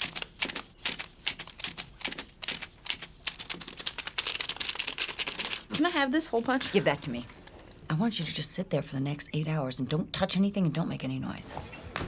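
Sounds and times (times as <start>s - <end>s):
handheld tool clicking and snipping paper: 0.0s - 5.6s.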